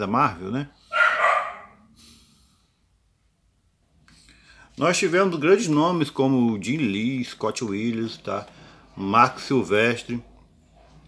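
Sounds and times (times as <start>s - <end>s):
dog barking: 0.9s - 1.9s.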